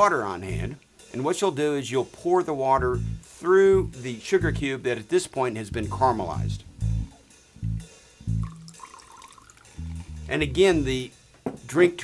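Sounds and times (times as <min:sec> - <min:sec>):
music with plucked bass notes: 0:00.0 - 0:00.8, 0:02.2 - 0:05.0, 0:05.6 - 0:08.8, 0:09.6 - 0:11.9
water trickling into glass: 0:08.4 - 0:10.1.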